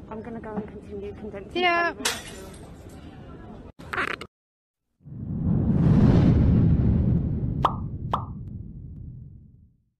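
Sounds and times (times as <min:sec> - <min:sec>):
low rumble of whoosh effect: 0:05.0 - 0:09.8
cartoon pop sound effects: 0:07.6 - 0:08.4.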